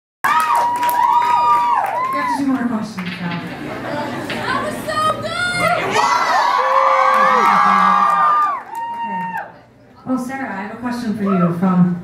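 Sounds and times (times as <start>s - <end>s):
audience screaming and cheering: 0.2s - 2.4s, 5.0s - 9.7s.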